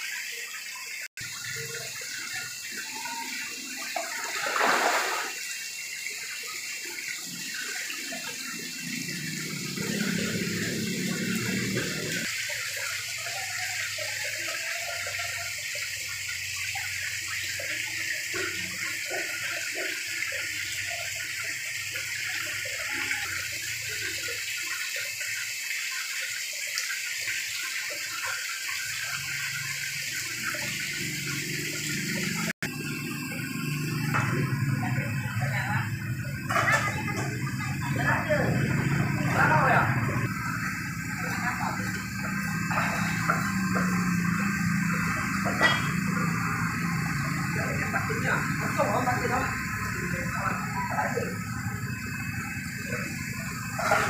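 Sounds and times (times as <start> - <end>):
water splashing into tank: 0.0 - 54.0.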